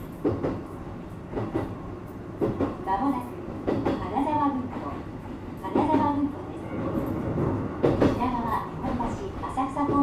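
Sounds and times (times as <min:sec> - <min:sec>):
train running rumble: 0:00.0 - 0:10.0
recorded announcement voice: 0:08.2 - 0:10.0.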